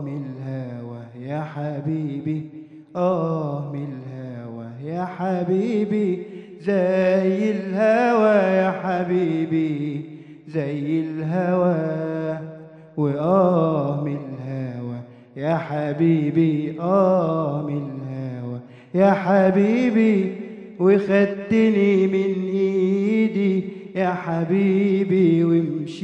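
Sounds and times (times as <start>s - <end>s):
man singing unaccompanied: 0.0s - 26.0s.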